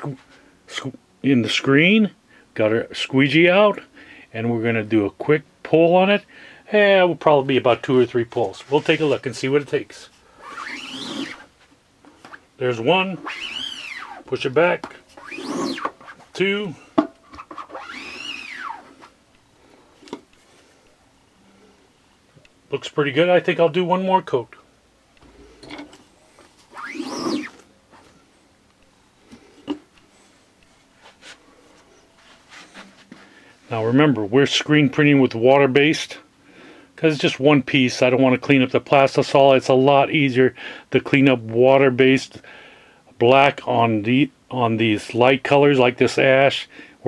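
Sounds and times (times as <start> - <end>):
squeegee scraping with squeak: 10.4 - 11.5, 13.1 - 14.5, 15.1 - 16.3, 17.3 - 19.1, 26.6 - 28.1.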